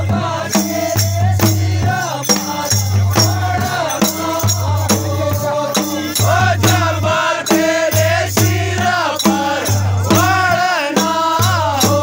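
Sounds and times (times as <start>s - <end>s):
drum thumping a steady beat: 0.0s - 12.0s
men singing together: 0.0s - 12.0s.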